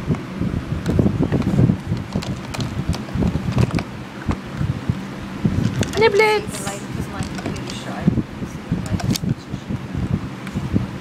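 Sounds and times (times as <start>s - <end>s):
microphone handling rumble: 0.0s - 11.0s
plastic toy clicks and knocks: 2.0s - 3.9s, 5.6s - 6.2s, 7.2s - 7.8s, 8.8s - 9.3s.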